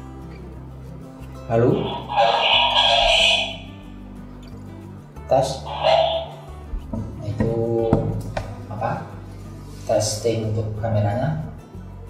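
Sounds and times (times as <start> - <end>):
background music: 0.0 - 12.0
person saying a word with delay: 1.8 - 3.6.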